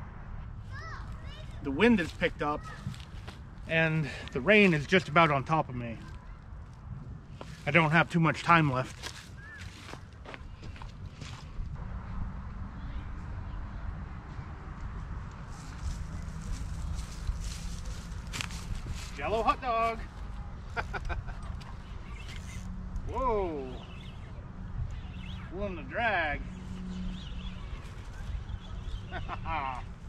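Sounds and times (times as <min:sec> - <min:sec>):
wind buffeting microphone: 0:08.8 - 0:25.5.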